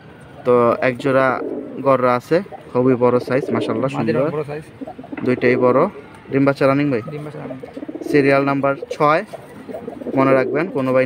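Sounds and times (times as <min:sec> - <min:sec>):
pigeons cooing: 0:00.7 - 0:06.2, 0:06.9 - 0:11.0.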